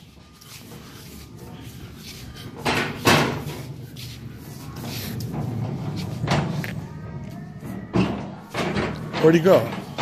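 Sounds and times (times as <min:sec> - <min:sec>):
faint store music: 0:00.0 - 0:10.0
cart frame thumps: 0:02.6 - 0:03.8, 0:04.8 - 0:06.6, 0:07.6 - 0:10.0
shopping cart rattling on concrete: 0:08.6 - 0:10.0.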